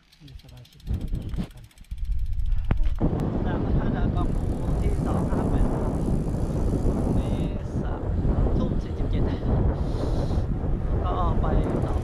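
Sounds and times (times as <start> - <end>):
wind rushing over microphone: 0.8 - 12.0.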